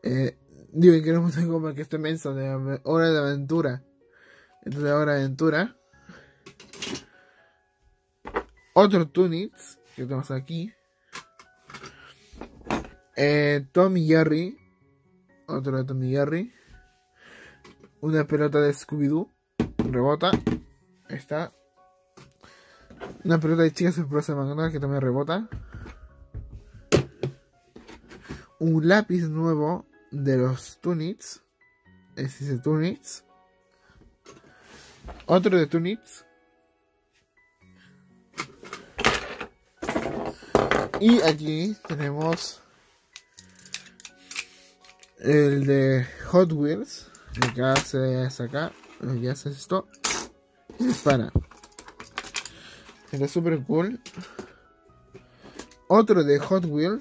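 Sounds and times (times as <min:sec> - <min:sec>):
toy ball bouncing on wooden table: 0:39.1 - 0:41.3.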